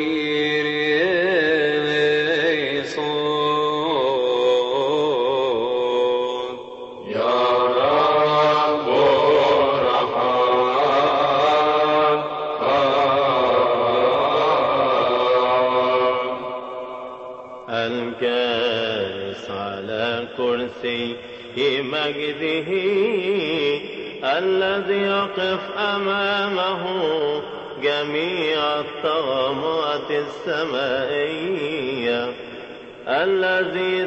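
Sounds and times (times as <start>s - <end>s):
person singing chant with vibrato: 0.0s - 34.0s.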